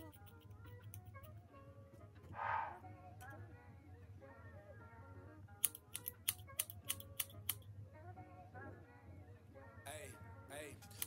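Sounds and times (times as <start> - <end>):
background music: 0.0 - 11.0
scissors snipping: 5.6 - 7.6.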